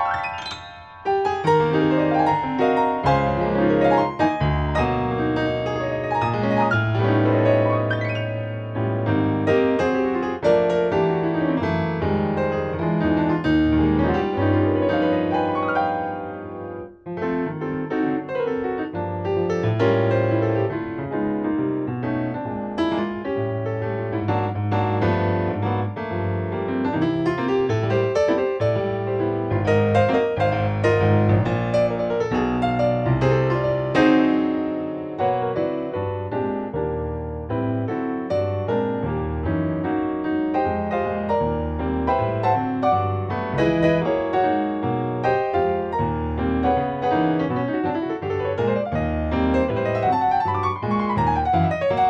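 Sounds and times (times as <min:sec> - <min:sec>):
piano chords over bass notes: 0:00.0 - 0:52.0.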